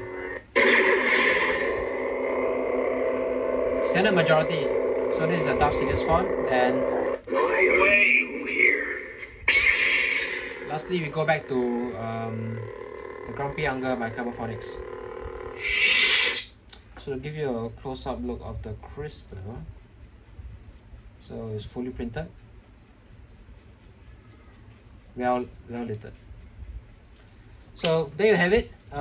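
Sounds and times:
lightsaber hum: 0.0s - 17.6s
loud hissing swell: 7.9s - 16.5s.

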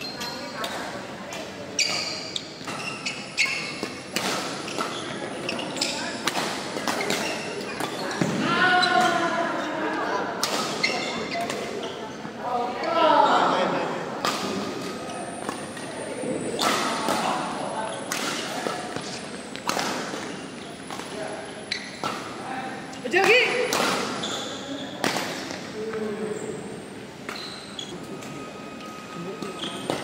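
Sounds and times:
players' voices: 0.0s - 30.0s
rackets hitting shuttlecock: 5.8s - 8.4s, 16.5s - 17.5s, 18.1s - 21.2s, 23.1s - 24.4s.

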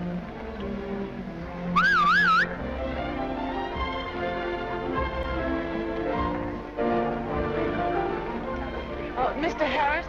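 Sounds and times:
warbling whistle rising in pitch: 1.8s - 2.6s.

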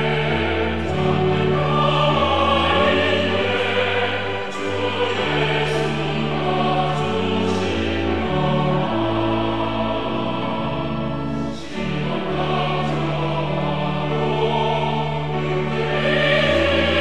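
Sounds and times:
choir singing a hymn: 0.0s - 17.0s
piano: 0.0s - 17.0s
violin: 0.0s - 17.0s.

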